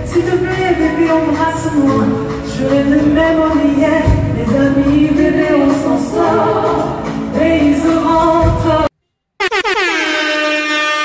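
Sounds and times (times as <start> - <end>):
horn-like blast sliding down: 9.4 - 11.0.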